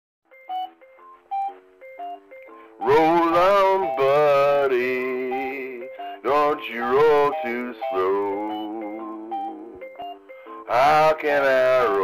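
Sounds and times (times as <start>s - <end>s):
electronic organ chords: 0.3s - 12.0s
man singing: 2.8s - 9.8s, 10.6s - 12.0s.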